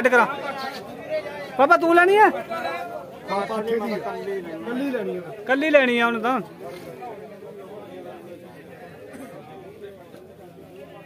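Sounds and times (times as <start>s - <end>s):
men's voices chattering: 0.0s - 11.0s.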